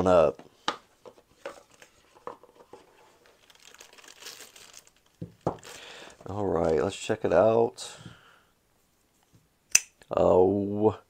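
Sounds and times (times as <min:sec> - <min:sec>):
plastic wrapping crinkling: 0:01.3 - 0:07.2.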